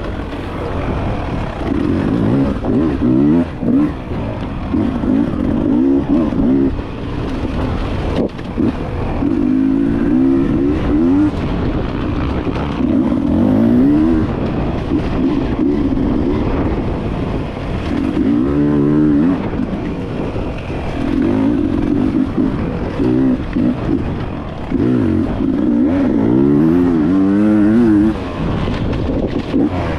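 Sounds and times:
motorcycle engine revving: 0:00.0 - 0:29.9.

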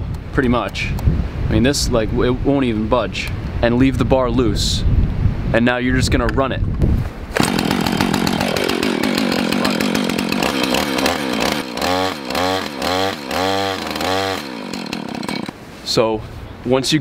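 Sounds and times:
chainsaw engine revving: 0:07.4 - 0:15.6.

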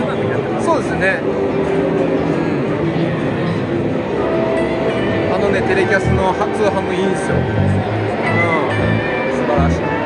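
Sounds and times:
exhibition hall hubbub: 0:00.0 - 0:10.0
electric guitar through amp: 0:05.6 - 0:10.0.

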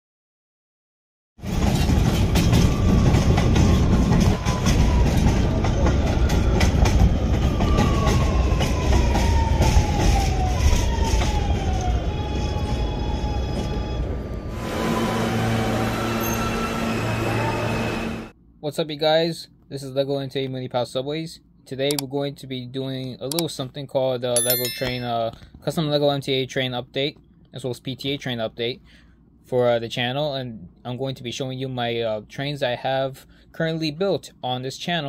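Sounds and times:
low train hum: 0:01.4 - 0:18.6.

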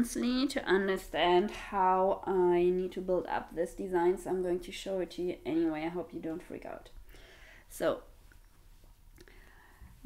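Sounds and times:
faint breathy sounds: 0:09.2 - 0:10.0.

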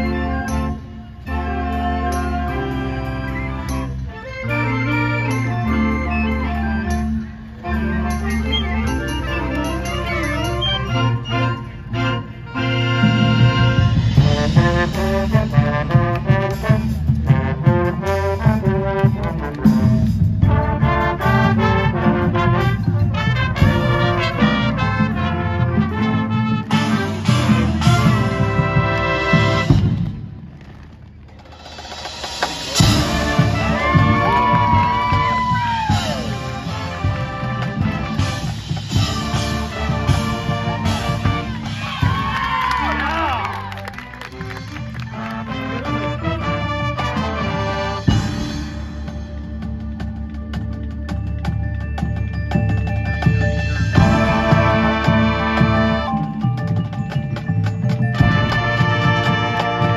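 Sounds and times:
mallet keyboards: 0:00.0 - 0:29.9, 0:31.4 - 0:59.9
marching band playing: 0:00.0 - 0:59.9.

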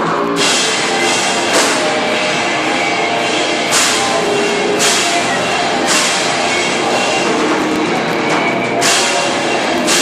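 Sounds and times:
drum kit crashes: 0:00.0 - 0:10.0
loud live rock band: 0:00.0 - 0:10.0.

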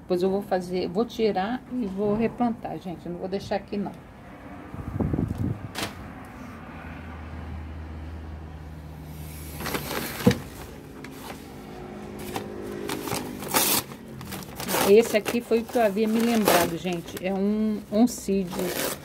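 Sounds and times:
paper packing rustling: 0:09.4 - 0:19.0.

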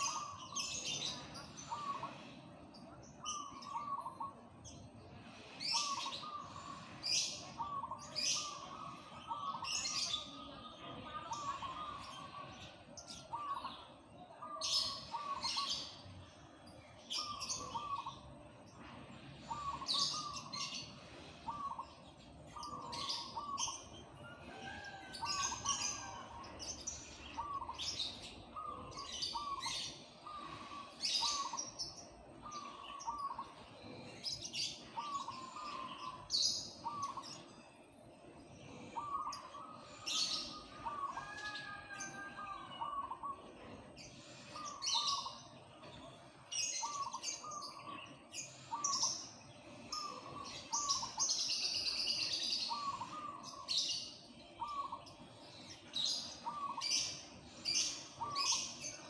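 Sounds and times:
dove cooing: 0:00.0 - 0:02.3, 0:05.6 - 0:10.2, 0:17.1 - 0:18.2, 0:19.4 - 0:21.8, 0:22.6 - 0:23.8, 0:27.4 - 0:31.7, 0:32.4 - 0:37.5, 0:38.8 - 0:44.0, 0:52.6 - 0:53.9, 0:56.0 - 0:59.0
small birds chirping: 0:00.0 - 0:59.0.

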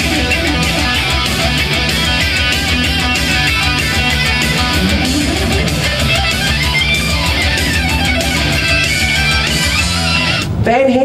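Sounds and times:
heavy metal electric guitar: 0:00.0 - 0:10.6.

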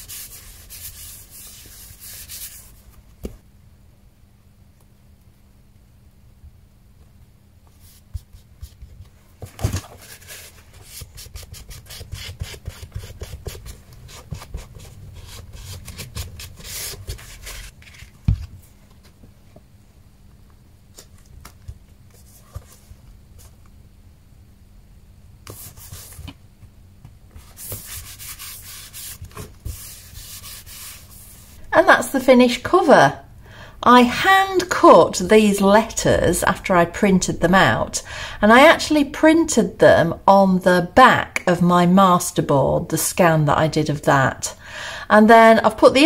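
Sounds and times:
bone folder rubbing paper: 0:00.0 - 0:02.8, 0:10.0 - 0:18.1, 0:27.4 - 0:31.6
woman speaking: 0:31.7 - 0:46.0.

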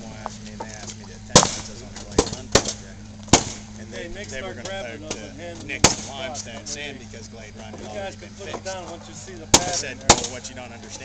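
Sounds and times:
faint voices: 0:00.0 - 0:11.0
outboard motor humming: 0:00.0 - 0:11.0.

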